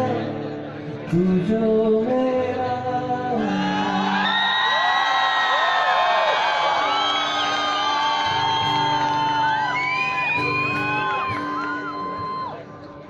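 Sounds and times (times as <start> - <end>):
audience whooping and cheering: 3.4 - 12.8.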